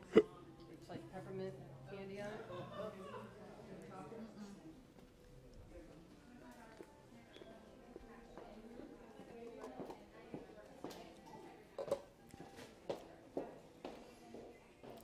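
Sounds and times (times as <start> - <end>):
murmur of distant voices: 0.0 - 15.0.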